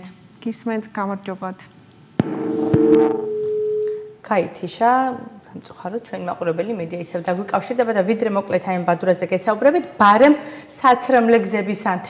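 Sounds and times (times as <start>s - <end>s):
steady electronic tone: 2.2s - 4.2s.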